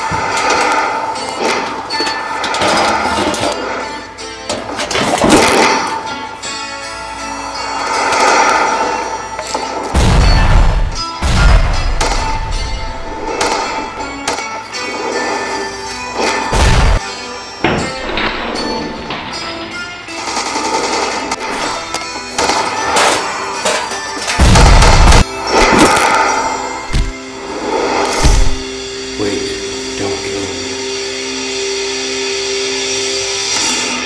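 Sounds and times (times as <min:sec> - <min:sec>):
trailer-style music: 0:00.0 - 0:34.0
gunshots: 0:04.9 - 0:06.1, 0:07.9 - 0:14.5, 0:16.2 - 0:17.0, 0:20.2 - 0:27.2.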